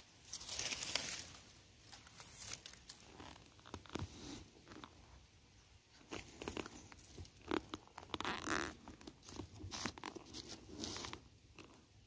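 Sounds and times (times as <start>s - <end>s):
dry leaves and twigs crunching: 0.0s - 5.0s.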